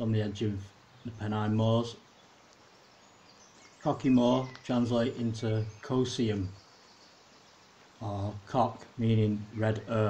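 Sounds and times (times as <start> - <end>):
faint outdoor hiss: 0.0 - 10.0
faint high chirps: 0.9 - 8.4
man's voice: 3.8 - 6.5, 8.0 - 10.0.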